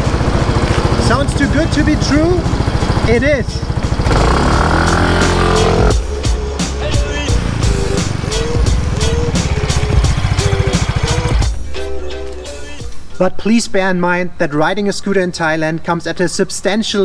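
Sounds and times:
scooter engine revving: 0.0 - 11.5
background music with steady beat: 3.6 - 13.4.

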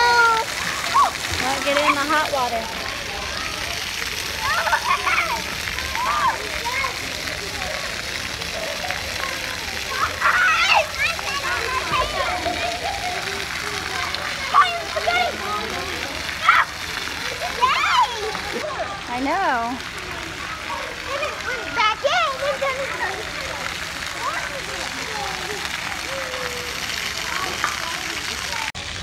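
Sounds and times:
children calling out: 0.0 - 19.1, 19.8 - 28.8
water jets splashing on concrete: 0.0 - 29.0.

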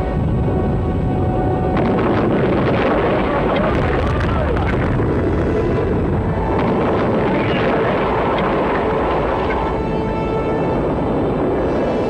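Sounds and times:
rocket engines roaring: 0.0 - 12.0.

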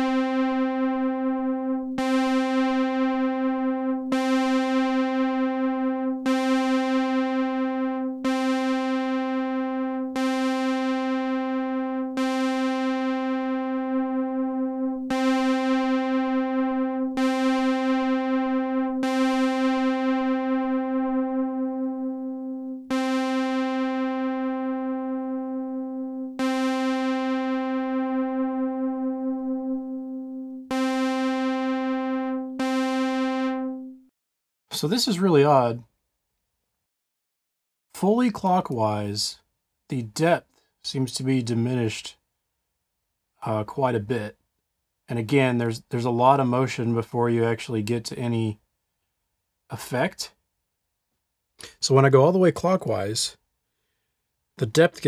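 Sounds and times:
synthesizer note with chorus effect: 0.0 - 34.1.

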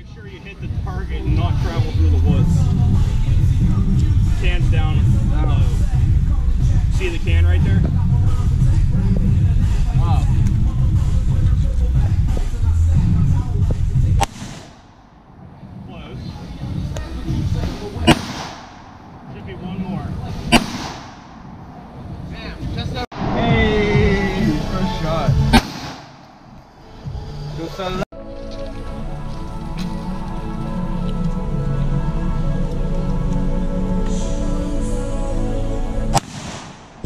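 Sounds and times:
heavy low rumble: 0.0 - 28.0
pistol shots: 14.2 - 14.8, 18.1 - 18.9, 20.5 - 21.5, 25.5 - 26.4, 36.1 - 37.0.

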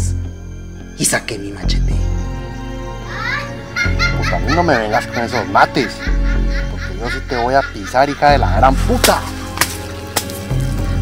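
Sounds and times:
dark background music: 0.0 - 11.0.

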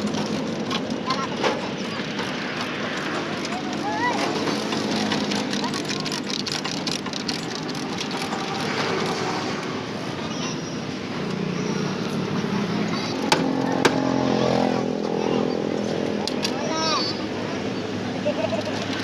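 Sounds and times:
street traffic: 0.0 - 19.0.

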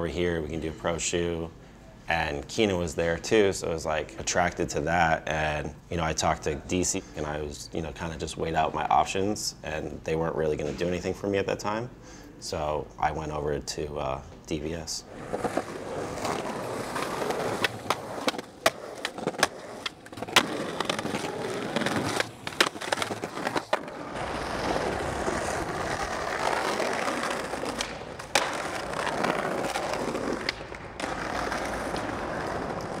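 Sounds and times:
skateboard wheels rolling on concrete: 15.0 - 33.0
skateboard clacks: 15.2 - 33.0.

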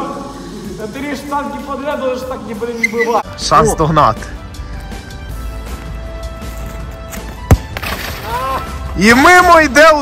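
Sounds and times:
background music: 0.0 - 10.0
foot kicking a football: 7.2 - 8.2.

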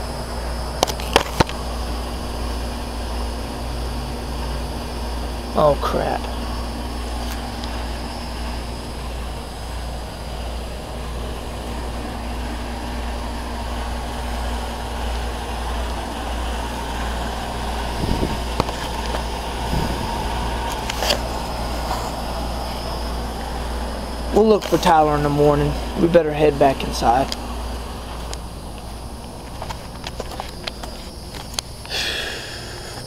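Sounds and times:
low rumble and mechanical hum: 0.0 - 33.0.

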